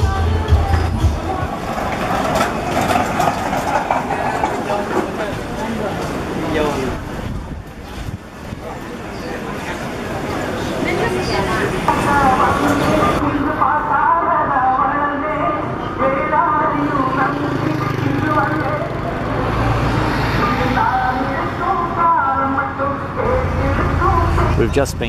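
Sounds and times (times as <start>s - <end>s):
bus engine rumbling: 0.0s - 25.0s
street traffic: 0.0s - 25.0s
people talking: 8.6s - 19.0s, 20.4s - 25.0s.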